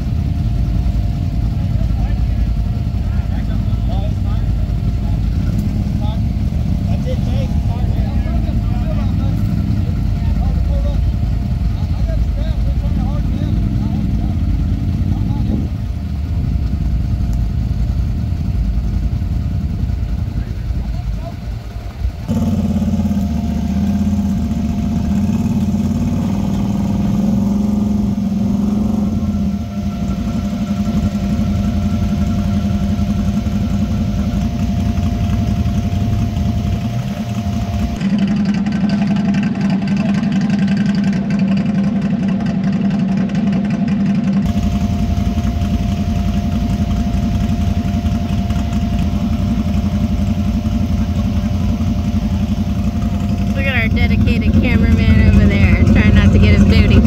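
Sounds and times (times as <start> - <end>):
utility vehicle engine running: 0.0 - 57.0.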